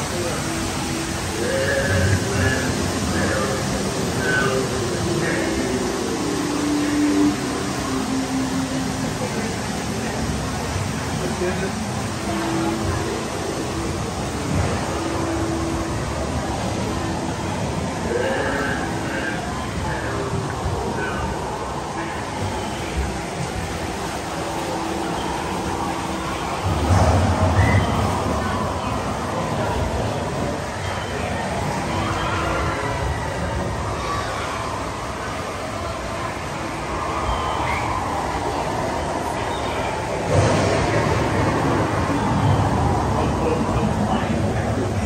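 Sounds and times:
echoing background wash: 0.0 - 45.0
faint voices: 0.0 - 45.0
rushing rumbling cavern ambience: 0.0 - 45.0
heavy low rumble: 25.0 - 30.6.

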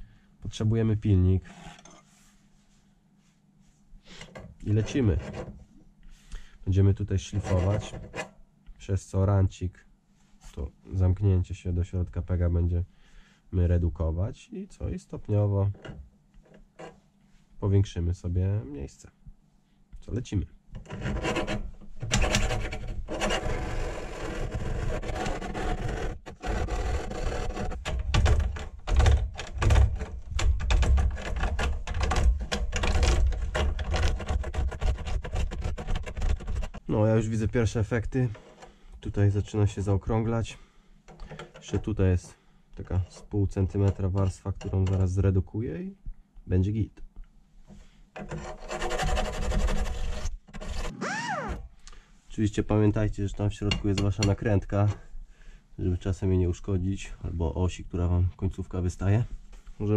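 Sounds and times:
hand file rasping on aluminium: 20.8 - 27.8, 48.2 - 50.9
rising and falling tone: 50.9 - 51.6.

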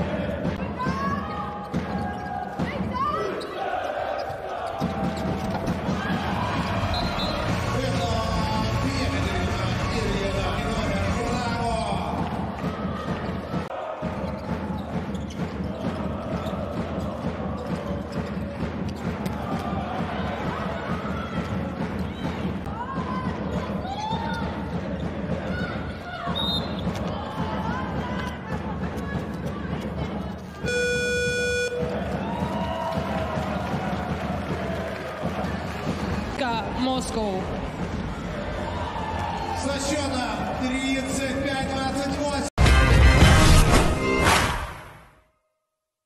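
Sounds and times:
crowd noise: 0.0 - 44.6
buzzer low tone: 30.6 - 32.0.

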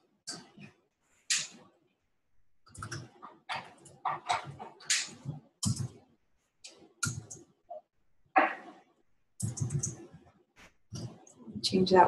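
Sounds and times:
computer keyboard typing: 9.4 - 10.0.

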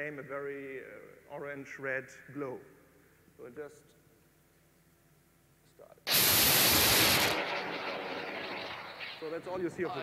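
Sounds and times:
rocket motor roaring rush: 6.1 - 8.9.

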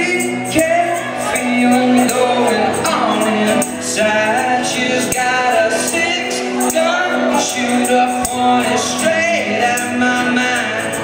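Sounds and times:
electric guitar: 0.0 - 11.0
man singing: 0.0 - 11.0
strummed acoustic guitar: 0.0 - 11.0.

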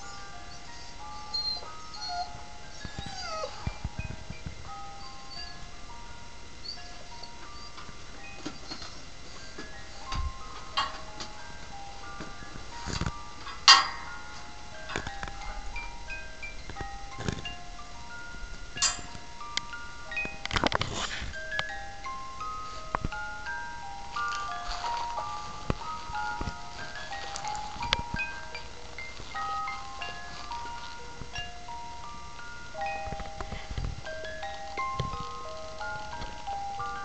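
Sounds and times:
electronic lullaby melody: 0.0 - 37.0.

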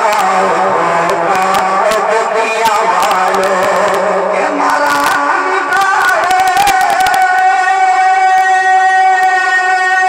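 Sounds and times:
melody through loudspeakers: 0.0 - 10.0.

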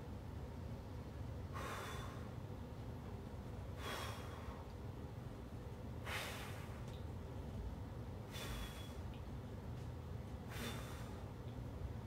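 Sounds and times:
man breathing under strain: 1.5 - 2.4, 3.8 - 4.7, 8.3 - 9.0, 10.5 - 11.3.

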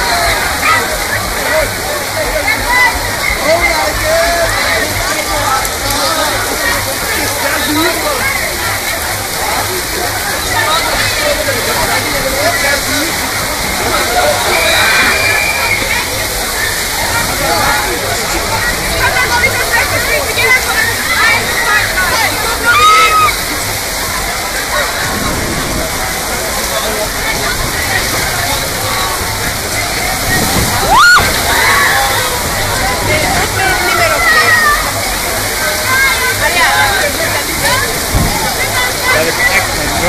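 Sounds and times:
torrential rain: 0.0 - 40.0
distant people shouting: 14.0 - 17.3, 20.9 - 23.6, 27.6 - 39.6
gusting wind: 24.8 - 34.1.

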